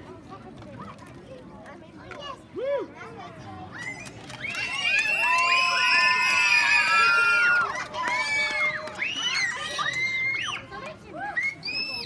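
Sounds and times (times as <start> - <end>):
children shouting and squealing: 3.6 - 12.0.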